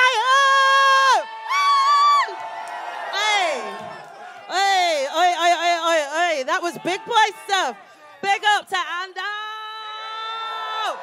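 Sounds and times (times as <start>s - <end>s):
crowd cheering: 0.0s - 8.7s, 9.5s - 11.0s.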